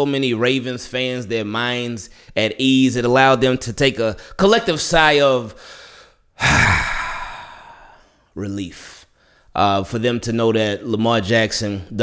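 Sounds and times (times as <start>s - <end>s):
man sighing: 6.4s - 8.2s.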